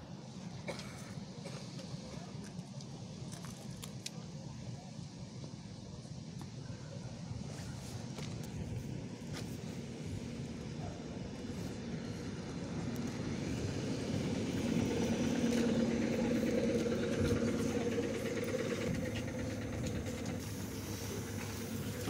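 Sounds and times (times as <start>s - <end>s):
electric train humming: 8.8s - 22.0s.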